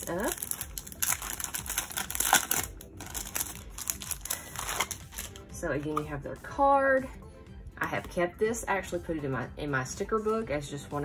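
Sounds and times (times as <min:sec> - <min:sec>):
plastic sleeve crinkling: 0:00.0 - 0:05.4.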